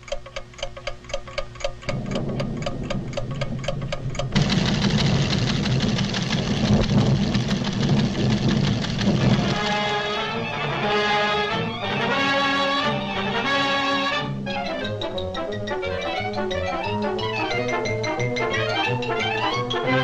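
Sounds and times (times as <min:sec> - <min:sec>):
clockwork ticking rapidly: 0:00.0 - 0:10.4, 0:14.8 - 0:20.0
low rumble: 0:01.9 - 0:09.8.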